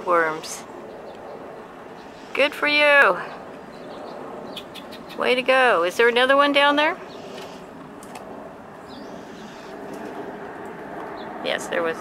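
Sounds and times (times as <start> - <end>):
bird chirp: 3.2 - 5.3, 8.8 - 9.9.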